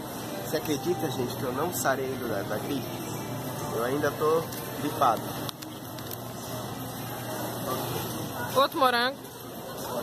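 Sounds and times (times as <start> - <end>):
supermarket background noise: 0.0 - 10.0.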